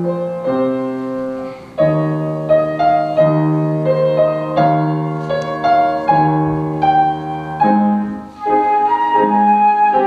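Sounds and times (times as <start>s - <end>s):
piano accompaniment: 0.0s - 10.0s
wind instrument carol melody: 0.0s - 10.0s.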